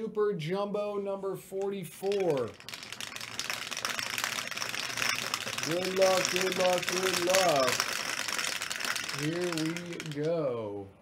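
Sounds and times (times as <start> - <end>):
dice rattling in plastic dome: 1.5 - 10.5.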